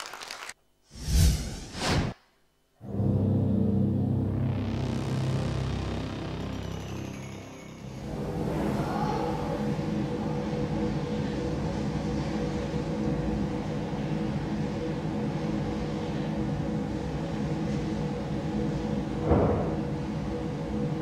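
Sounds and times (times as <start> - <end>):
low drone of held tones: 2.8 - 21.0.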